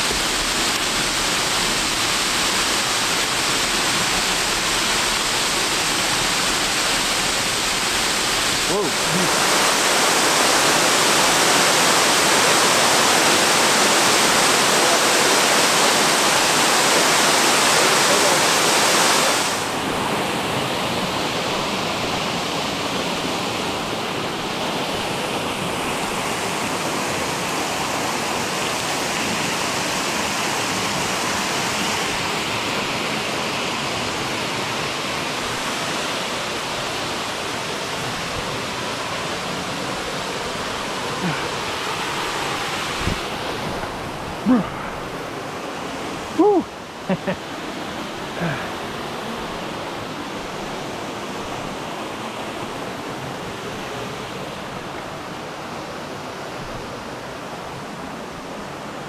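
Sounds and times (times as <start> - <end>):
waterfall pouring into pool: 0.0 - 19.8.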